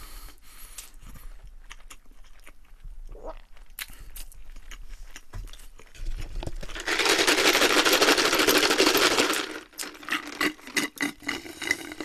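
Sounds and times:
mouth and handling noises: 0:00.7 - 0:12.0.

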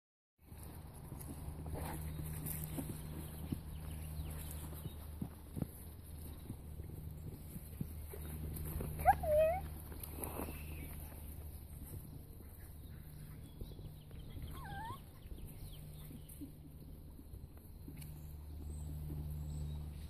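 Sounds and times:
puppies scampering on grass: 0:00.4 - 0:20.0
steady low hum: 0:00.5 - 0:20.0.

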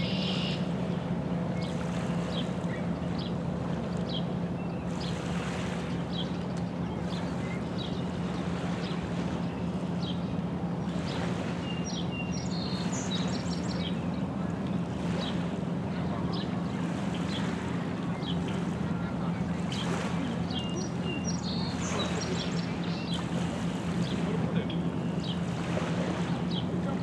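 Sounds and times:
small birds chirping: 0:00.0 - 0:27.0.

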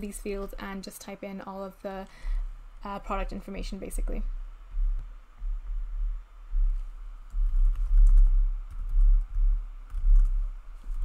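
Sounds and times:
low thudding: 0:04.0 - 0:11.0.

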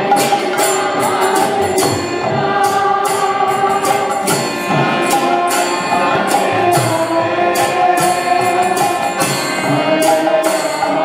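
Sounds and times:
group chanting: 0:00.0 - 0:11.0
hand cymbals struck: 0:00.0 - 0:11.0
harmonium: 0:00.0 - 0:11.0.

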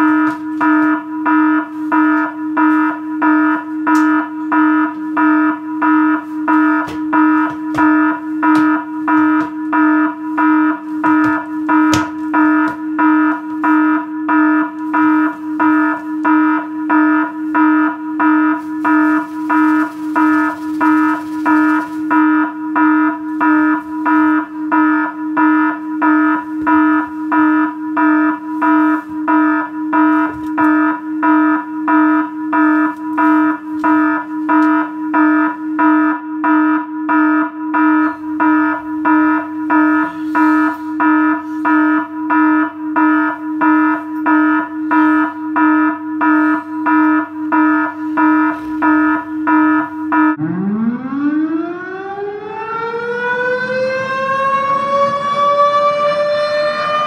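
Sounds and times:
electronic alarm clock beeping: 0:00.0 - 0:50.7.

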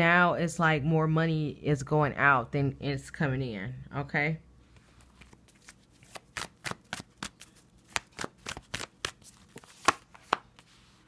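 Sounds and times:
cards being shuffled: 0:04.8 - 0:10.8.

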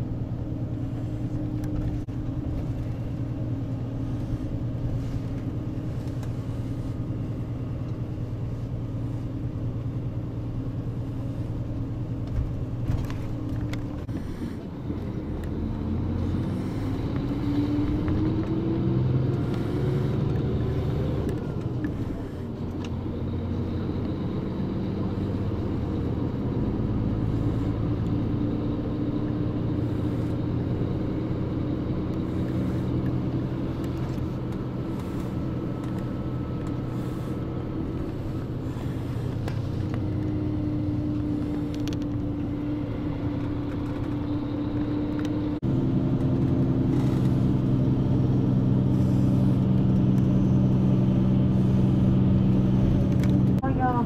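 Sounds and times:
bus engine hum: 0:00.0 - 0:54.0
road noise: 0:00.0 - 0:54.0.

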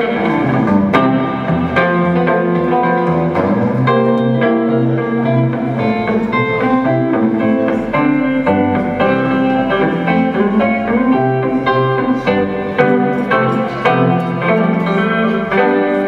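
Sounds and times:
electric guitar played fingerstyle: 0:00.0 - 0:16.0.

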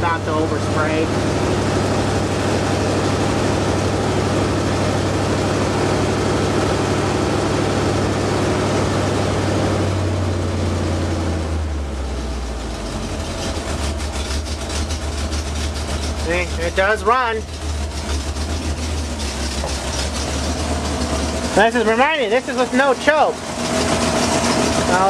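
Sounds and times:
pickup truck engine idling: 0:00.0 - 0:25.0.

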